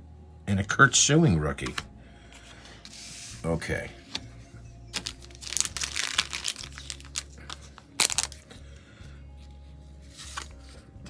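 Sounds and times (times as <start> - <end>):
low background music: 0.0 - 11.0
plastic wrapper crinkling and tearing: 4.9 - 8.5.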